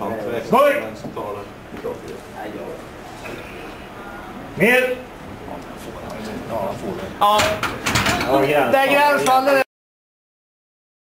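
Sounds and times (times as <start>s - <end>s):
barbell plates knocking and clanking: 7.3s - 8.4s.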